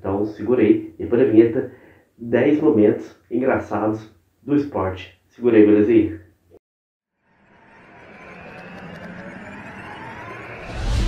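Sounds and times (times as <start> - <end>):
noisy swell: 7.1 - 11.0.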